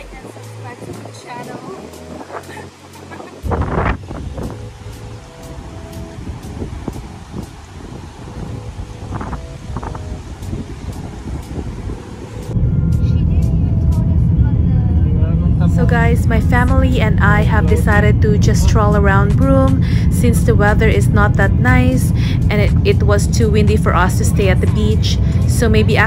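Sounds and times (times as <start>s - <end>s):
car engine and road noise: 0.0s - 26.0s
wind buffeting microphone: 0.0s - 26.0s.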